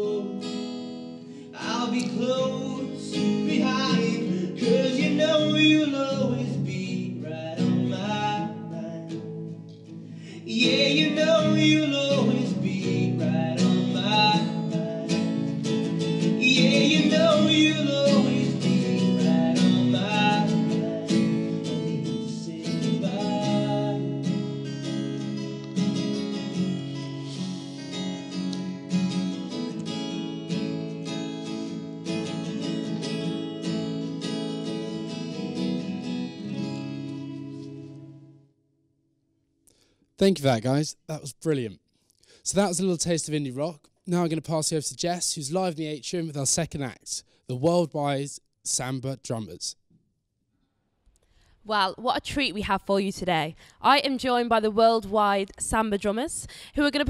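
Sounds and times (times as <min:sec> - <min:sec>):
man singing: 0:00.0 - 0:00.6, 0:01.5 - 0:09.4, 0:10.2 - 0:15.5, 0:16.3 - 0:24.4
acoustic guitars strumming: 0:00.0 - 0:38.4.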